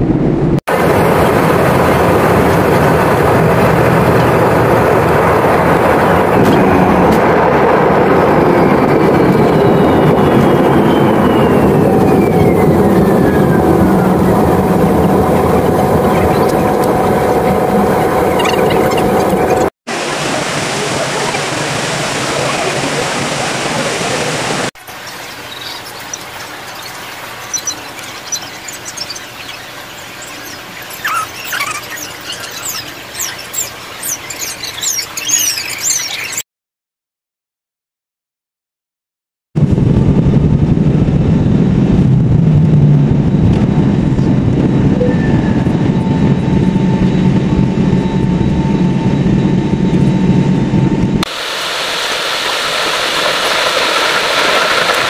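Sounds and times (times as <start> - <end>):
jet engines rumbling and whining: 0.0 - 36.4, 39.6 - 55.0
rushing hiss: 51.3 - 55.0.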